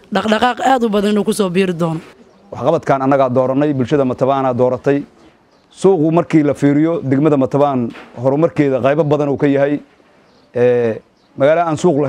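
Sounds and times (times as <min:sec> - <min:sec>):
woman talking: 0:00.0 - 0:02.2
man talking: 0:02.5 - 0:09.9, 0:10.5 - 0:12.0.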